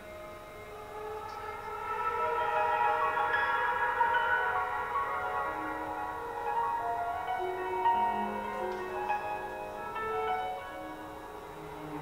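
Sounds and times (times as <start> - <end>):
gong ringing: 0.0 - 11.8.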